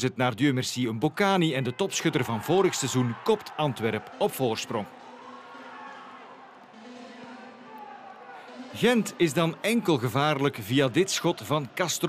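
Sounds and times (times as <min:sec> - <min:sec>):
distant players shouting: 0:01.6 - 0:10.0.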